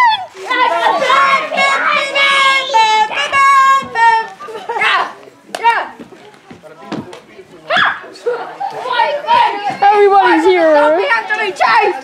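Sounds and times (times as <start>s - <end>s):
children calling out and singing: 0.0s - 6.0s, 7.7s - 12.0s.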